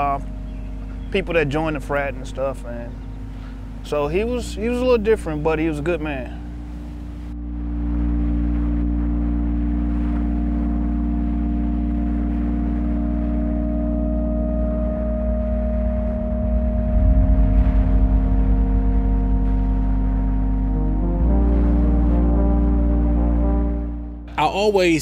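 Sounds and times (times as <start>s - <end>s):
ambient drone chords: 0.0s - 24.5s.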